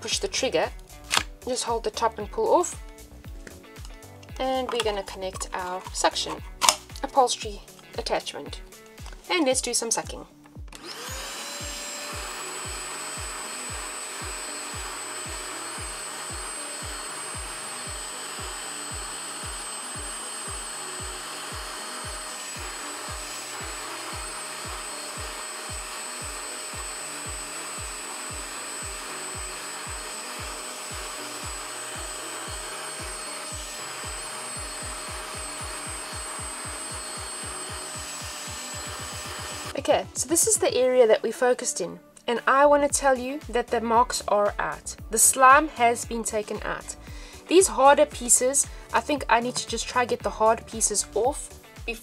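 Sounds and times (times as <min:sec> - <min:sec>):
background music with steady beat: 0:00.0 - 0:52.0
spot cleaner suction motor whining: 0:10.7 - 0:39.9.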